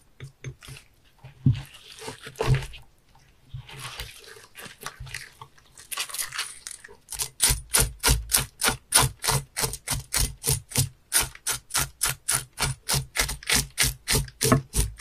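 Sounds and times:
knife scraping fish: 1.6s - 2.7s, 5.9s - 15.0s.

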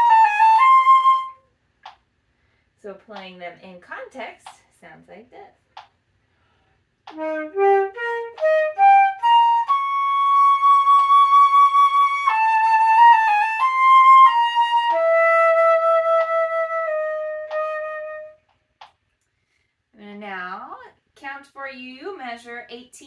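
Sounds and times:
solo flute playing: 0.0s - 1.5s, 7.1s - 18.5s.

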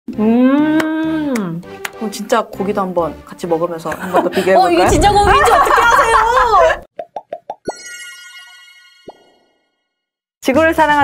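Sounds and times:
women laughing: 4.0s - 6.8s
cartoon popping blips: 7.0s - 8.3s, 9.0s - 9.5s
bright ringing chime: 7.7s - 9.8s.

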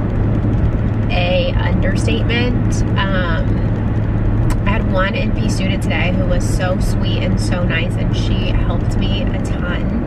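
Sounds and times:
car cabin road and engine rumble: 0.0s - 10.0s
woman talking: 1.1s - 3.7s, 4.5s - 10.0s.

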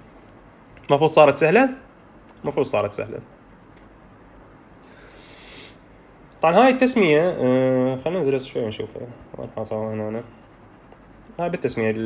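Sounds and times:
faint background hiss: 0.0s - 12.0s
man breathing in: 4.8s - 5.9s.

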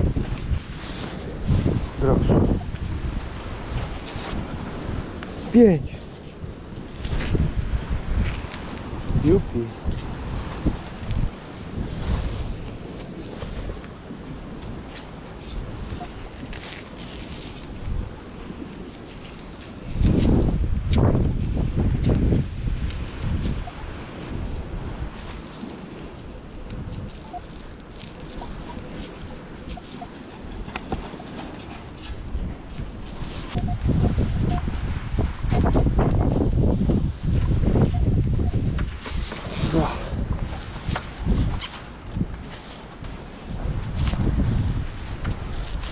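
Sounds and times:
wind buffeting microphone: 0.0s - 45.9s.

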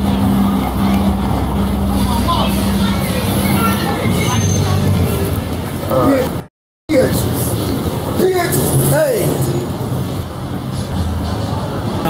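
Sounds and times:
faint voices: 0.0s - 9.6s.

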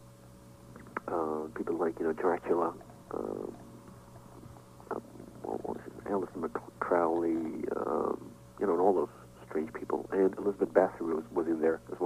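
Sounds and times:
steady low hum: 0.0s - 12.0s
man talking: 0.8s - 3.6s, 4.9s - 12.0s.

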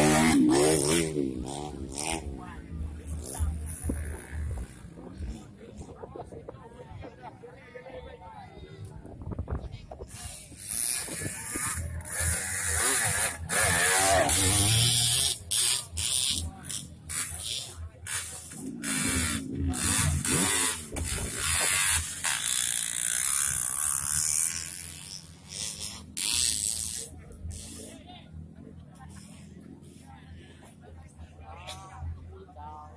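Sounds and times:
dirt bike engine revving: 0.0s - 5.4s, 10.6s - 27.8s
spectators' voices: 0.0s - 22.6s.

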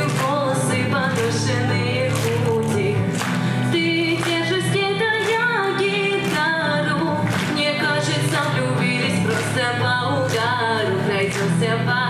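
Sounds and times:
girl singing pop-rock song: 0.0s - 12.0s
strummed guitar: 0.0s - 12.0s.

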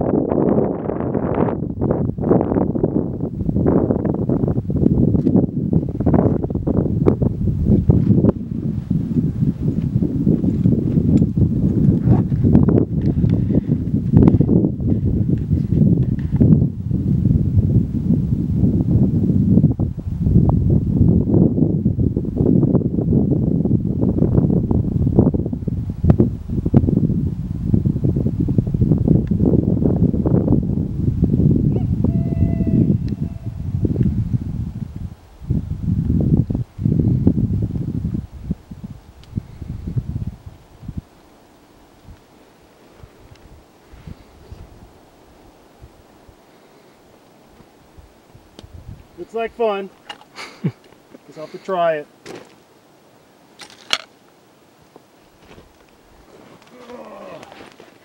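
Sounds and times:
wind buffeting microphone: 0.0s - 52.4s.

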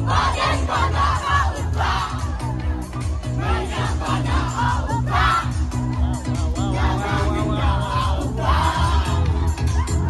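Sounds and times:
crowd shouting and singing along: 0.0s - 10.0s
loud dance music with bass beat: 0.0s - 10.0s.

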